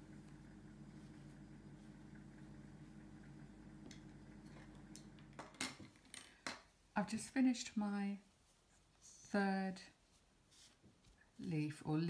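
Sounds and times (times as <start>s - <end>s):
faint low hum: 0.0s - 6.2s.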